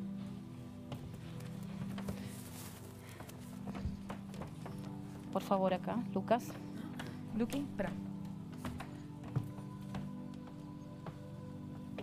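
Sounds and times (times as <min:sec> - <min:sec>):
soft music of held low notes: 0:00.0 - 0:12.0
light knocks and shuffles: 0:00.1 - 0:05.6.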